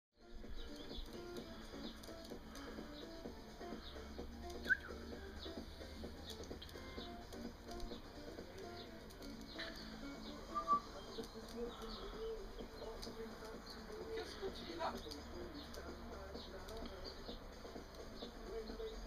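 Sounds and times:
small birds chirping: 0.2 - 19.0.

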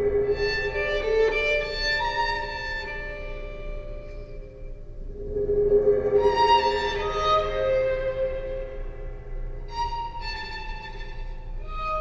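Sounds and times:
music of long held notes: 0.0 - 12.0.

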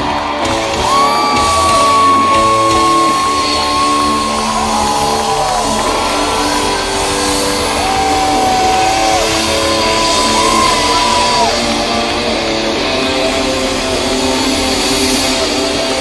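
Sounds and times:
crowd shouting: 0.0 - 13.6
live rock band: 0.0 - 16.0.

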